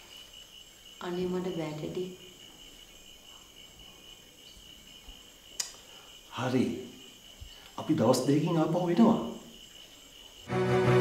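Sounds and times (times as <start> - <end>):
crickets trilling: 0.0 - 10.6.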